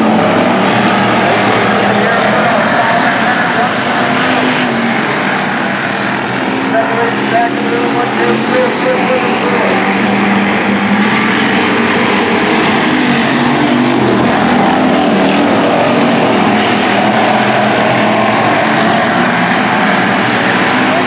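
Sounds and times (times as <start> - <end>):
race car engines: 0.0 - 21.0.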